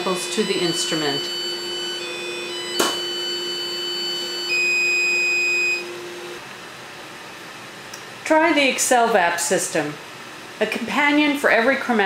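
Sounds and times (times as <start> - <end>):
electronic alarm buzzer tones: 0.0 - 6.2.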